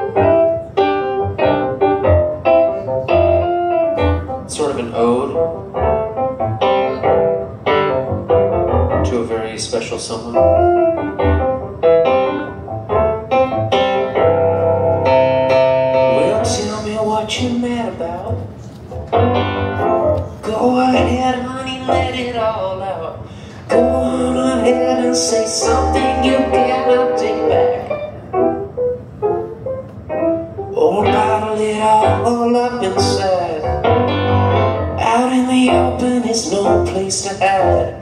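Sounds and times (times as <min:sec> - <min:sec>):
piano chords on keyboard: 0:00.0 - 0:38.0.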